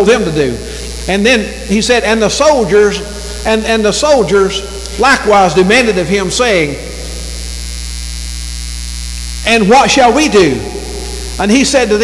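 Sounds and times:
electrical mains hum: 0.0 - 12.0
faint hiss: 0.0 - 12.0.

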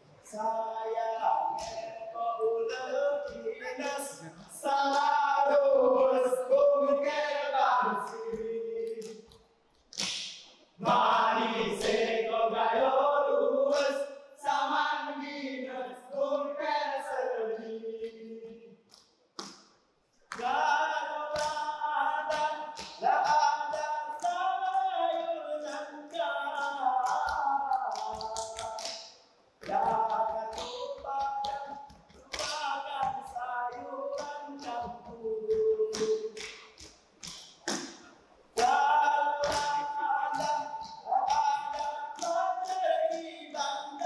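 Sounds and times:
group singing in unison: 0.0 - 9.4, 10.8 - 18.8, 20.3 - 36.9, 37.8 - 44.0
hands clapping and slapping: 1.6 - 2.0, 4.6 - 5.2, 8.0 - 11.1, 18.9 - 44.0.

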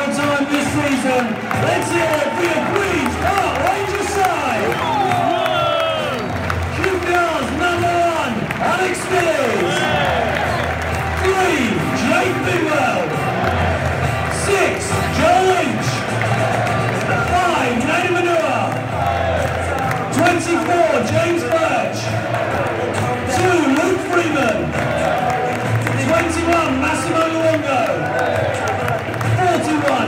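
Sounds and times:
crowd cheering: 0.0 - 30.0
crowd noise: 0.0 - 30.0
music over public address: 0.0 - 30.0.

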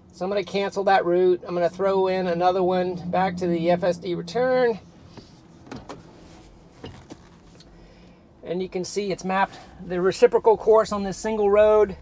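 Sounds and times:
faint steady car hum: 0.0 - 12.0.

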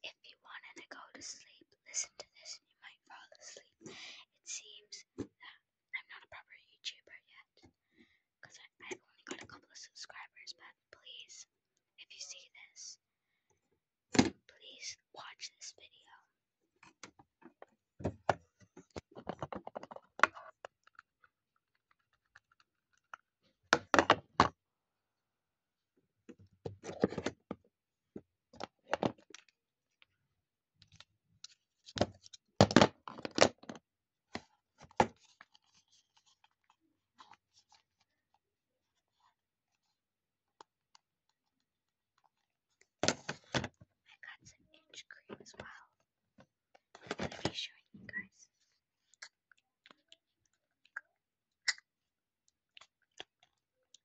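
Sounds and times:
girl whispering: 0.0 - 7.6, 8.4 - 13.0, 14.4 - 16.3, 44.1 - 46.0, 47.2 - 48.6
plastic clicks and knocks: 17.0 - 20.4.

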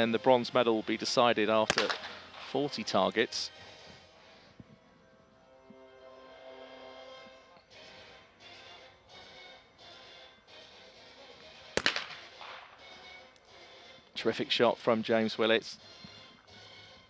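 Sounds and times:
faint background music: 0.0 - 17.0
shotgun shot with echo: 1.7 - 2.6, 11.8 - 12.8.

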